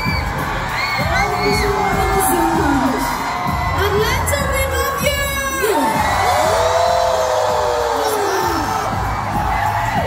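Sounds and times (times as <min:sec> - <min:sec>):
crowd cheering and whooping: 0:00.0 - 0:10.0.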